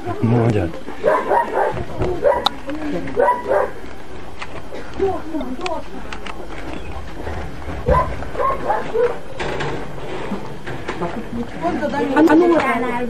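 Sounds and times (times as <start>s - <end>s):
people's voices: 0.0s - 13.0s
dog barking and yipping: 1.0s - 2.6s, 3.2s - 3.8s, 7.8s - 9.3s.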